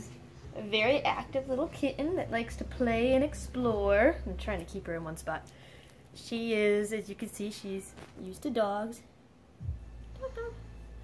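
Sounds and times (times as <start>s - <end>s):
low steady rumble: 0.0s - 7.1s, 9.0s - 11.0s.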